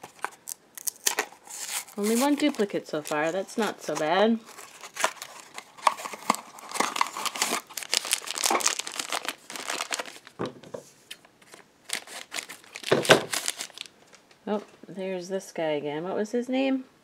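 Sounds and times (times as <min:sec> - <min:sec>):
packaging crinkling and tearing: 0:00.0 - 0:10.5, 0:11.1 - 0:14.2.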